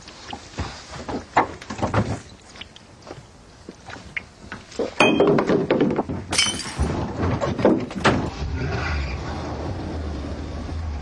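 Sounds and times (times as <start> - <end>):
glass smashing: 5.0 - 5.5, 6.3 - 7.0
glass shards clinking: 6.3 - 7.0.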